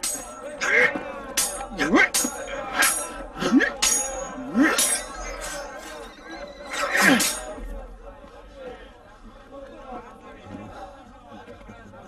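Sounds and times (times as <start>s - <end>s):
crowd voices: 0.0s - 12.0s
horse whinnying: 4.6s - 7.4s.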